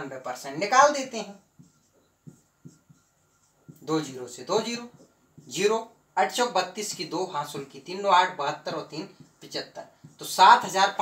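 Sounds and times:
marker pen writing on whiteboard: 0.0s - 11.0s.

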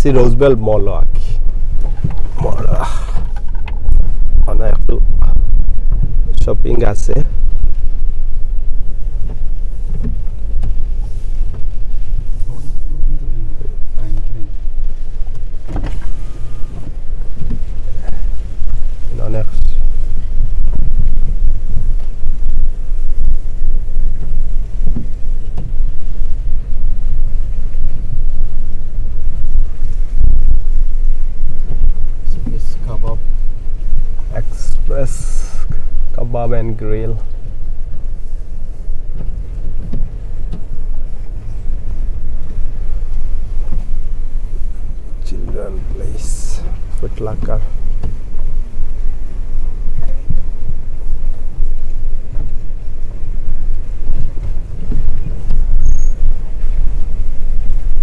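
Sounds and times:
car cabin rumble: 0.0s - 58.0s.

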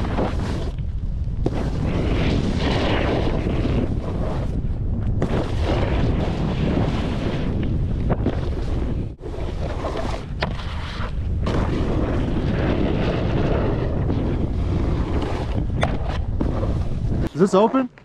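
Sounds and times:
snowboard edge scraping snow: 0.0s - 0.8s, 1.5s - 4.6s, 5.2s - 17.8s
wind rushing over microphone: 0.0s - 17.9s.

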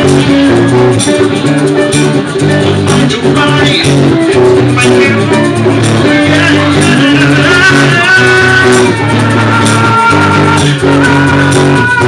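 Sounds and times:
acoustic guitars playing: 0.0s - 12.0s
rhythmic percussion: 0.0s - 12.0s.

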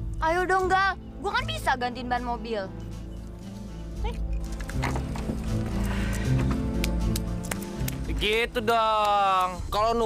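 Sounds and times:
background music with low held notes: 0.0s - 10.0s.

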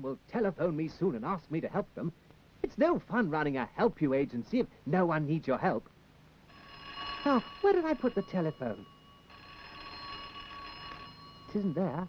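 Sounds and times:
telephone bell ringing: 6.5s - 12.0s.

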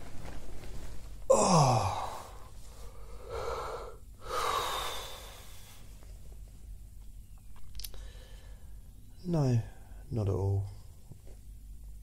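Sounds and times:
man breathing heavily: 1.3s - 5.9s.

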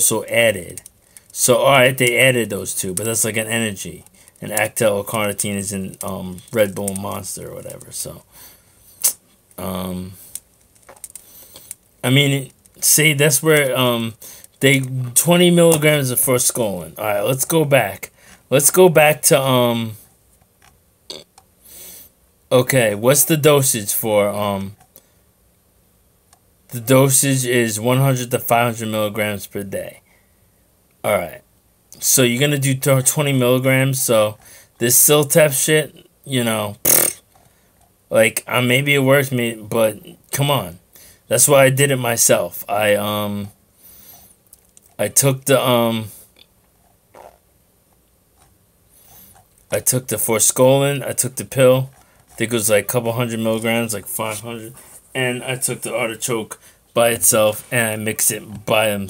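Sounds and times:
faint breath: 8.3s - 9.0s, 14.2s - 14.6s, 18.1s - 18.5s, 30.0s - 30.6s, 34.4s - 34.8s, 40.9s - 41.3s, 56.6s - 56.9s
mouth clicks and lip smacks: 9.0s - 9.3s
man saying um: 9.6s - 10.2s.

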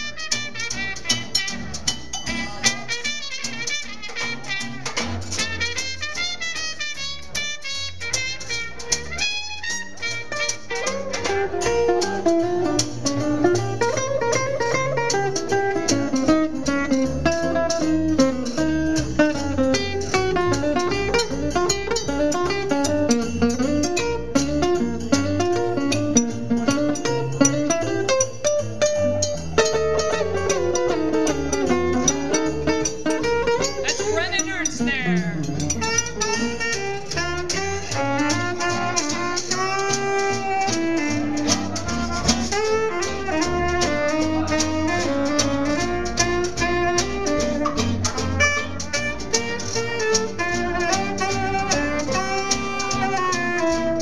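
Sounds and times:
plucked upright bass: 0.0s - 54.0s
strummed guitar: 0.0s - 54.0s
horn melody: 2.8s - 11.6s, 28.8s - 54.0s.

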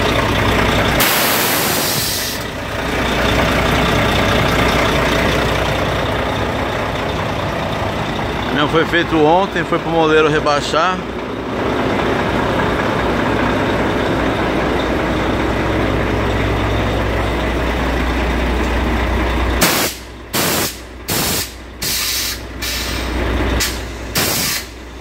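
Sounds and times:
compressed air hissing: 1.0s - 2.5s, 19.6s - 24.8s.

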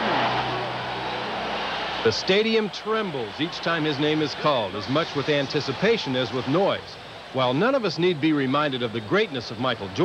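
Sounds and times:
arena crowd cheering: 0.0s - 10.0s.

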